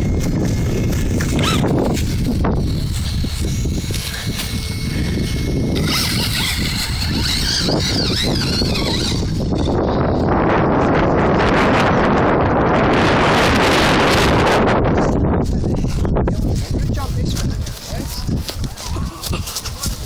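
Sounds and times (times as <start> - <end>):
electric motor whine: 0.0 - 20.0
wind rumbling on microphone: 0.0 - 20.0.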